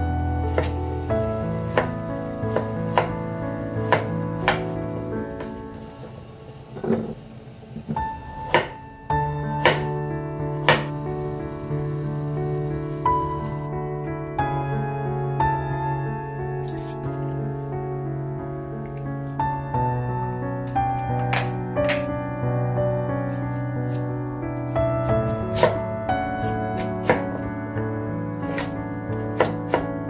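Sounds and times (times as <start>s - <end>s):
soft piano music: 0.0s - 30.0s
knife chopping on cutting board: 0.5s - 0.8s, 9.6s - 9.9s, 25.5s - 25.8s, 28.5s - 28.7s, 29.3s - 29.9s.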